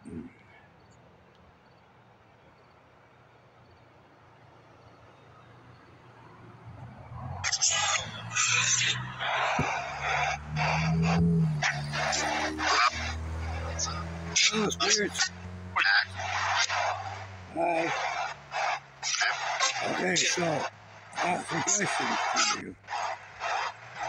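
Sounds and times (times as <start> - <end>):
snatches of broadcast sound: 7.1 - 24.0
radio static bursts: 7.3 - 24.0.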